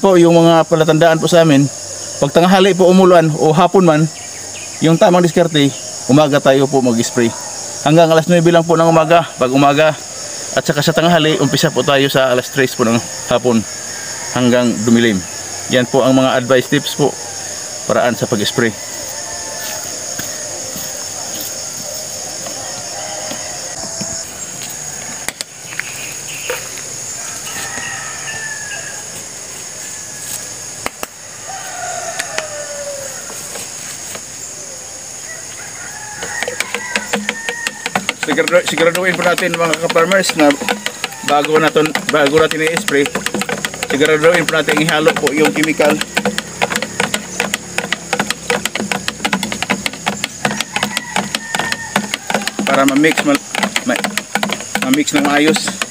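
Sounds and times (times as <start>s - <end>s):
rooster crowing: 8.8s - 25.5s, 27.0s - 33.8s, 34.6s - 55.9s
sprayer pump clicking and humming: 36.3s - 55.9s.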